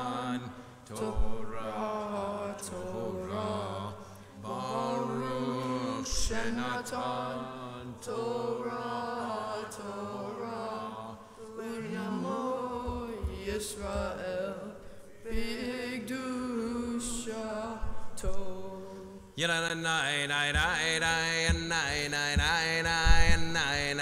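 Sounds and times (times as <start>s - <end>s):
person chanting: 0.0s - 24.0s.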